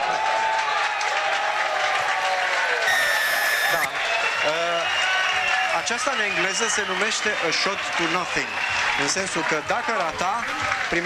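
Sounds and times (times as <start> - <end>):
stadium crowd cheering and applauding: 0.0 - 11.0
shrill steady tone: 2.9 - 3.9.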